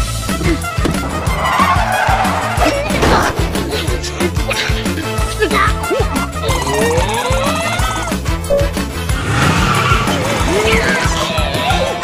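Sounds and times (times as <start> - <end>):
upbeat cartoon music: 0.0 - 12.0
car tyres squealing: 0.3 - 5.0, 7.6 - 12.0.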